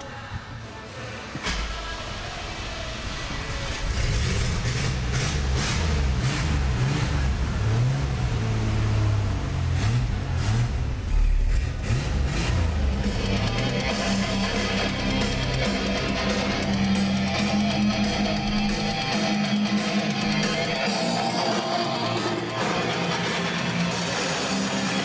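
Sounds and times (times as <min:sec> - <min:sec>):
car engine starting and revving: 0:01.4 - 0:25.0.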